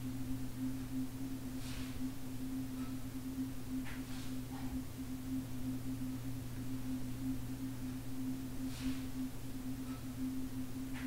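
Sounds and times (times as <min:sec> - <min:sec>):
low ambient drone: 0:00.0 - 0:11.0.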